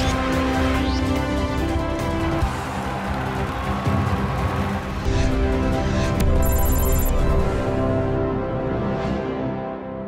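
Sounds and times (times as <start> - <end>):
music with sustained chords: 7.1 - 10.0.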